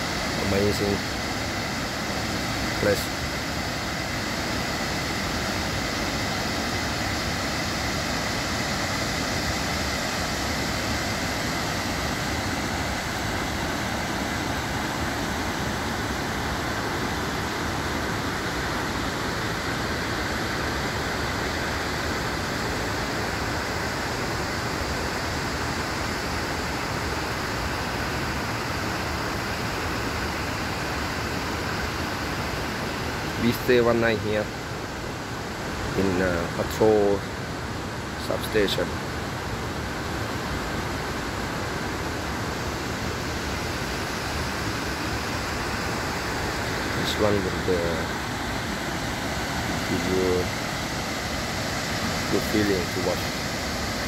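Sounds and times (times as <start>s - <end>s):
water rushing over rocks: 0.0s - 19.1s, 38.1s - 54.0s.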